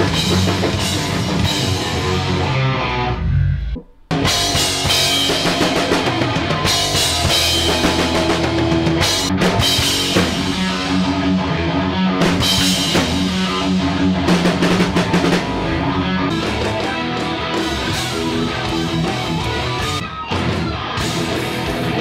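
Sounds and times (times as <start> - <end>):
heavy metal band playing: 0.0 - 3.5, 4.1 - 22.0.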